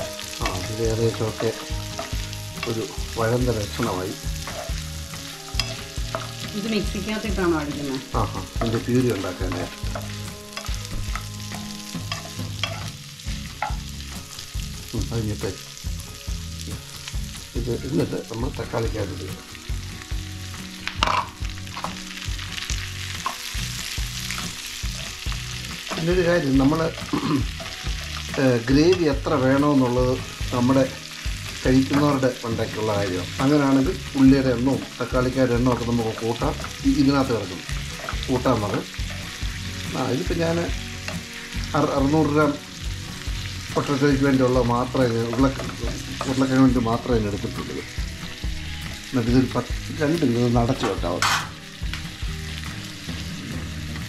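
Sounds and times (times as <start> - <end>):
spatula scraping a pan: 0.0 - 6.5, 8.3 - 13.8, 23.0 - 29.2
vegetables sizzling in oil: 0.0 - 54.0.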